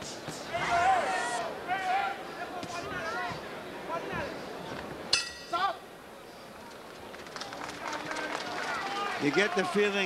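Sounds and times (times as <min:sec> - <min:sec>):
arena crowd noise: 0:00.0 - 0:10.0
boxing ring bell clang: 0:05.1 - 0:05.5.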